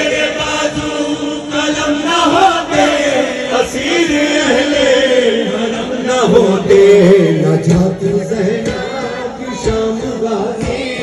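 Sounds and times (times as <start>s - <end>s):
men chanting through microphones: 0.0s - 11.0s.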